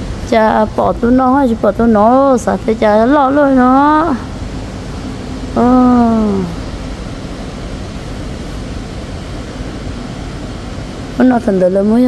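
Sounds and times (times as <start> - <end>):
air-conditioning hum: 0.0 - 12.0
woman speaking: 0.2 - 4.3, 5.6 - 6.6, 11.2 - 12.0.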